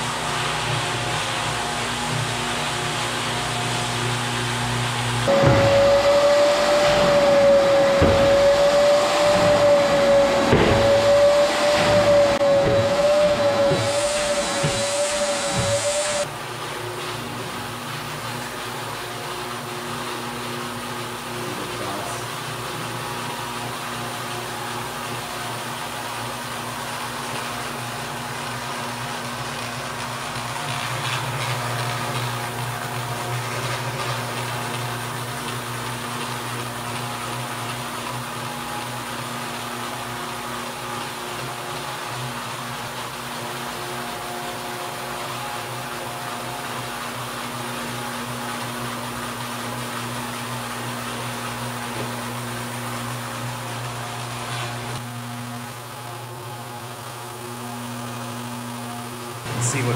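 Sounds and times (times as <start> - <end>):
floor machine motor humming: 0.0 - 59.9.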